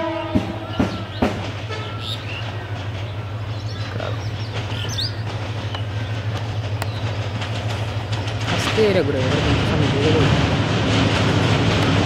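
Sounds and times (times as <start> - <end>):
diesel train rumbling: 0.0 - 12.0
birds chirping: 0.1 - 9.0.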